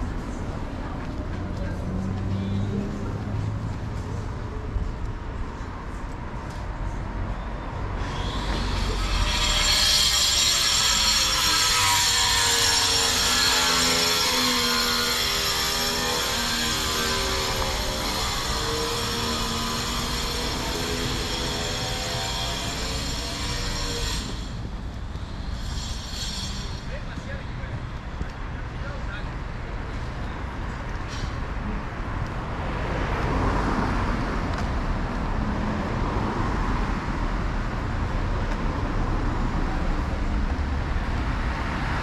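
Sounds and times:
street traffic: 0.0 - 42.0.

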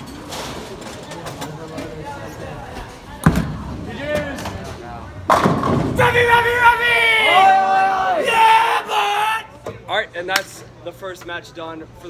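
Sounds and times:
bowling ball hitting pins: 5.2 - 6.0
people shouting and cheering: 5.9 - 9.6.

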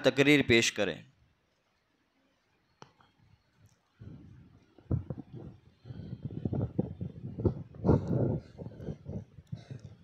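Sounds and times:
microphone handling bumps and rubbing: 4.0 - 10.0.

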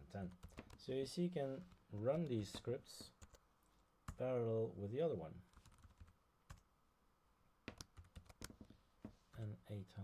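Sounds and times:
laptop keyboard keystrokes: 7.7 - 8.6.

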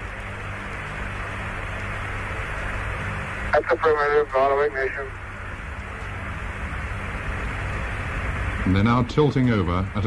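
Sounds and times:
low hum: 0.0 - 10.0
radio static hiss: 3.2 - 5.5.

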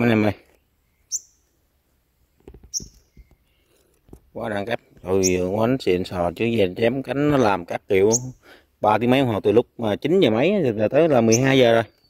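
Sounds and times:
bird high chirp: 0.5 - 1.6, 2.2 - 8.6, 10.8 - 12.0.

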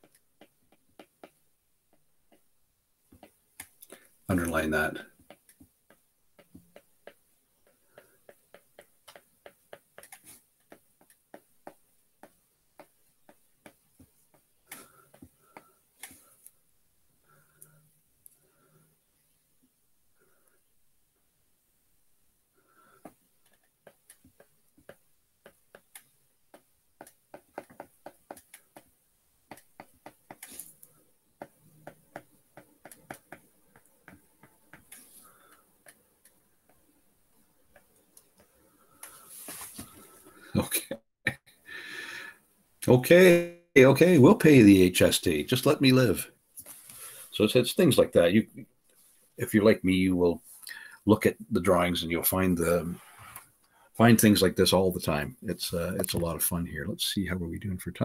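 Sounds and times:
stylus tapping on glass screen: 23.8 - 28.9.

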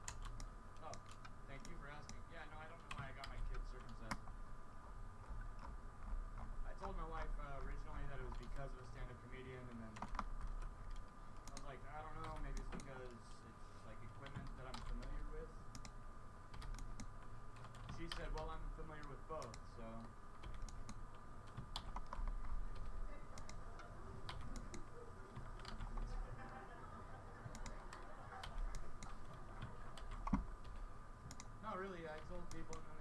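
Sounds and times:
computer keyboard keys clicking: 0.0 - 4.2, 9.8 - 13.0, 14.2 - 26.2, 27.5 - 31.5, 32.1 - 32.9
faint steady hum: 0.0 - 33.0.

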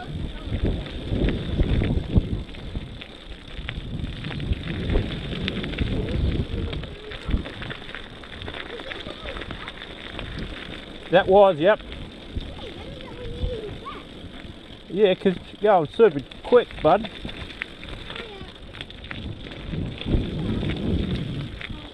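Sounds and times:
bike rattles and clicks: 0.0 - 21.9
tyres crunching on gravel: 0.0 - 21.9
wind rumbling on microphone: 0.0 - 21.9.

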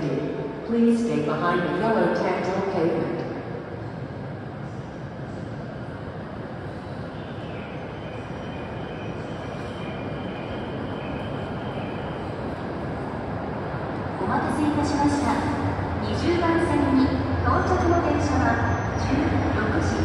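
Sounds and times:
train rumbling into station: 0.0 - 20.0.

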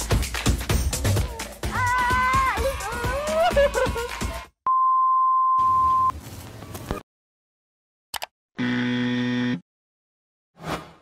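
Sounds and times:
click: 8.1 - 8.3.

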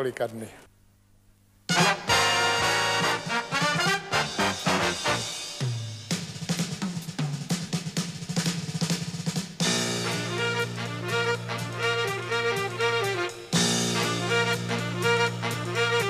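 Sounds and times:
jazz big band playing: 1.7 - 6.8, 9.1 - 16.0
drum kit strokes: 1.7 - 16.0.

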